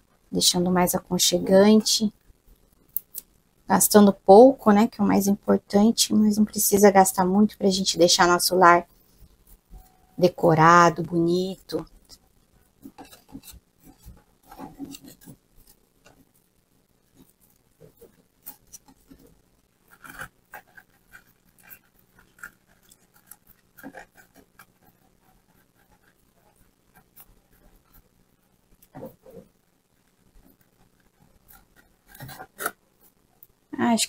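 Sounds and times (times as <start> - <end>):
twine rubbing and rustling: 8.0 - 33.4.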